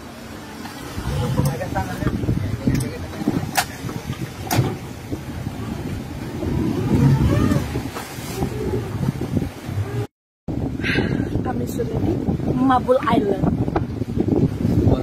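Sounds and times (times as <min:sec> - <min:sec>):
speedboat engine at low throttle: 0:00.0 - 0:15.0
water churning around hull: 0:00.0 - 0:15.0
wind on microphone: 0:00.8 - 0:15.0.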